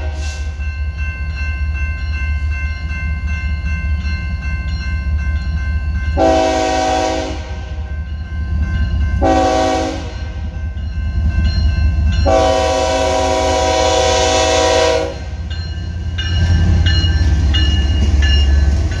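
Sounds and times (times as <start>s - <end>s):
train engine and wheel rumble: 0.0s - 19.0s
locomotive horn blasts: 6.2s - 7.8s, 9.2s - 10.3s, 12.2s - 15.3s.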